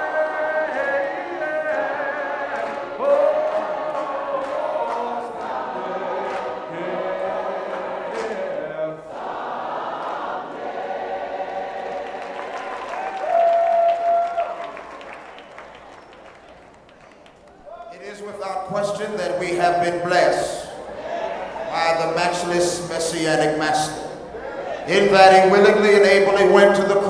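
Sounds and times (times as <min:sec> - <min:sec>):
a cappella choir singing gospel: 0:00.0 - 0:13.1, 0:18.8 - 0:27.0
people clapping: 0:00.0 - 0:19.0.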